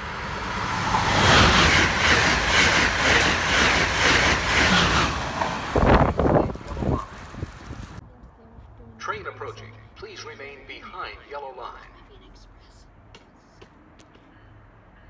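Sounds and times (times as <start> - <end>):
train passing at speed: 0.0 - 8.0
wind gusts on microphone: 4.4 - 8.3.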